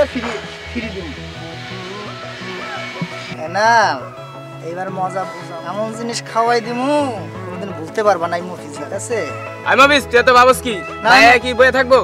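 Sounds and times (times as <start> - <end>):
low beat: 0.0 - 5.4.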